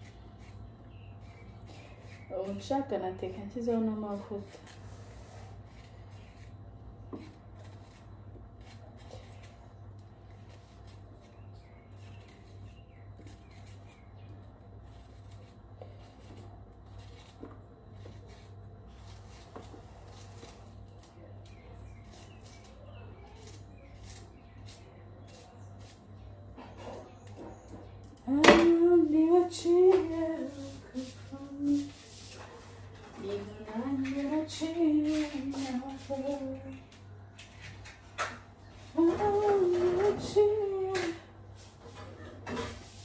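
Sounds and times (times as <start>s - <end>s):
knife ticking and scraping vegetable: 0.0s - 38.4s.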